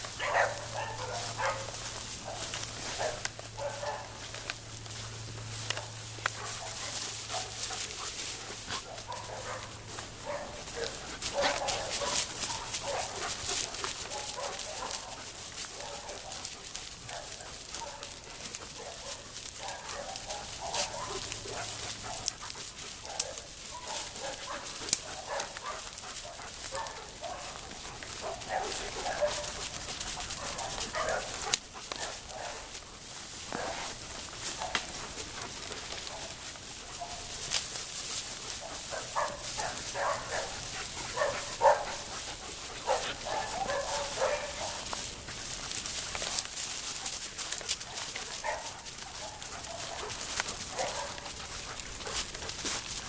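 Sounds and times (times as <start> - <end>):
dry brush crackling and rustling: 0.0 - 53.0.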